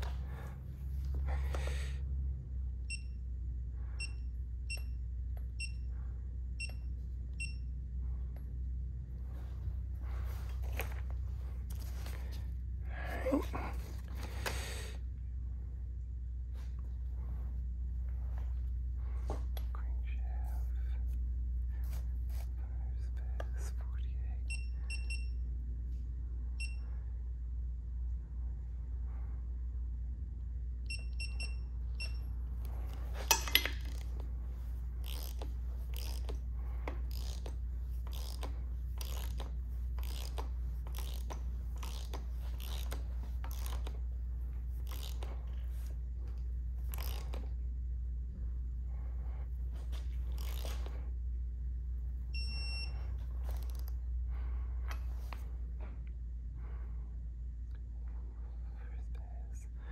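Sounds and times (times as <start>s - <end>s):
steady low hum: 0.0s - 59.9s
torque wrench beeping: 35.0s - 36.3s, 38.1s - 39.4s.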